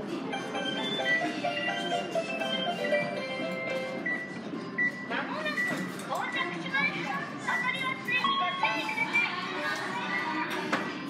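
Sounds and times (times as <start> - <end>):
people and children talking: 5.1 - 11.0.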